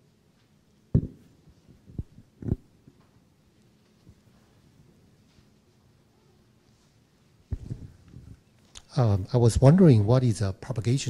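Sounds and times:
microphone handling thumps: 1.0 - 2.7, 7.5 - 8.4.

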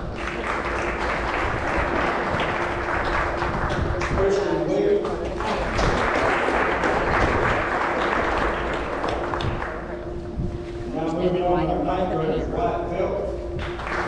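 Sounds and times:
audience applauding: 0.0 - 4.6, 5.3 - 10.2, 13.6 - 14.0.

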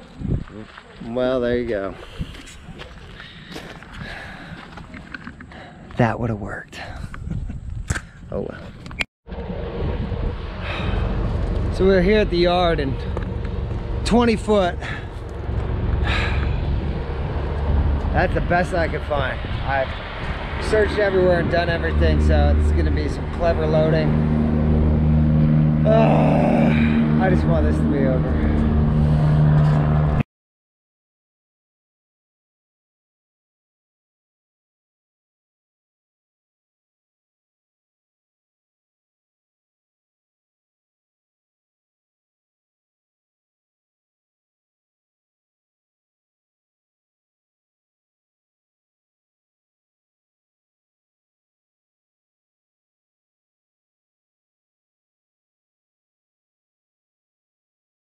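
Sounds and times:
footsteps on gravel: 0.0 - 5.3
vehicle engine idling: 10.4 - 19.1.

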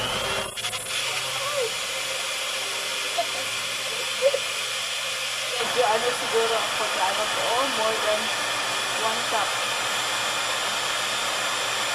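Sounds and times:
electric hand mixer running: 0.0 - 11.9.

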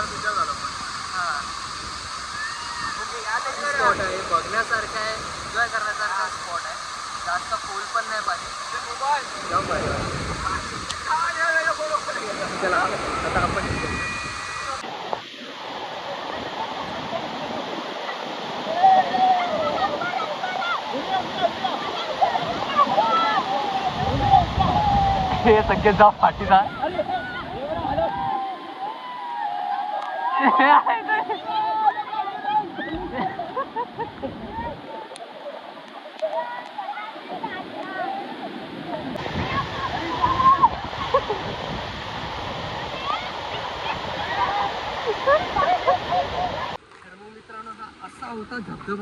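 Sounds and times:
waterfall rushing: 0.0 - 46.8
water splashing: 0.0 - 47.1
voices calling out: 6.2 - 25.8, 26.5 - 41.9.

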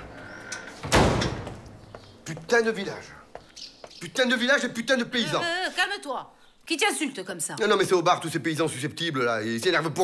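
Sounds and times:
door slamming shut: 0.0 - 1.8.

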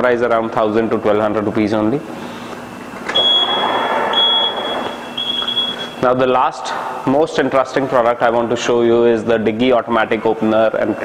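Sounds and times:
high warning beep: 3.1 - 6.2.

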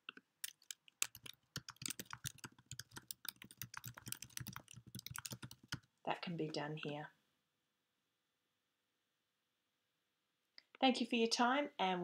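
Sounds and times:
computer keyboard key clicks: 0.4 - 5.9.

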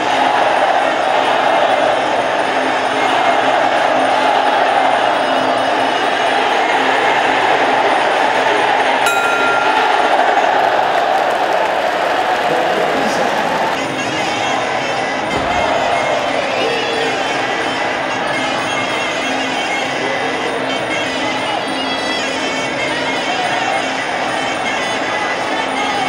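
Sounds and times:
crowd shouting: 0.0 - 20.6
brief high tone: 9.1 - 10.9
ringside music: 9.1 - 11.2.

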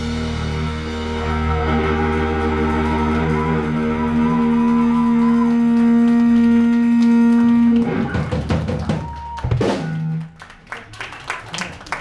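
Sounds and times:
bass sustained note: 0.0 - 8.3
electric guitar sustained note: 0.0 - 8.4.

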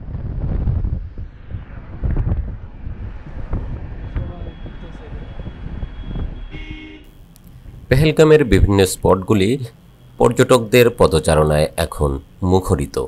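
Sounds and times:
wind buffeting microphone: 0.0 - 7.9
road rumble: 0.0 - 13.0.

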